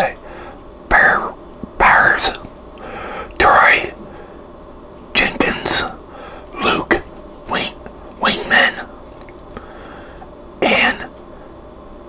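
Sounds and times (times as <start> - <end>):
man whispering: 0.0 - 0.2, 0.9 - 2.4, 3.3 - 4.0, 5.1 - 9.0, 10.6 - 11.2.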